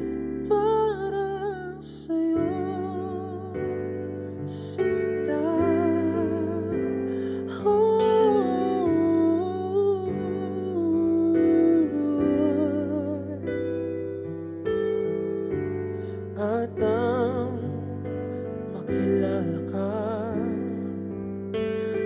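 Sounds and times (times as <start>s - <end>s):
man singing a slow ballad: 0.0s - 14.0s, 16.0s - 22.0s.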